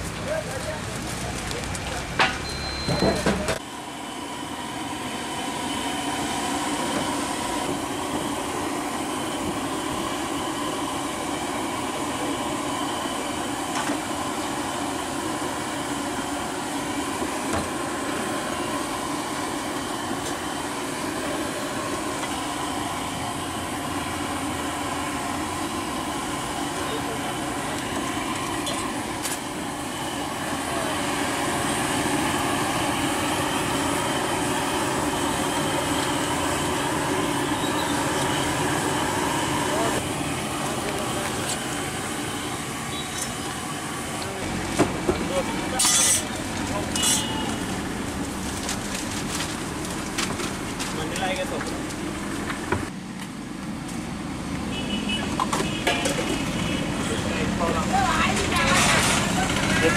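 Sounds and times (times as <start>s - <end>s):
faint voices: 0.1s - 3.6s.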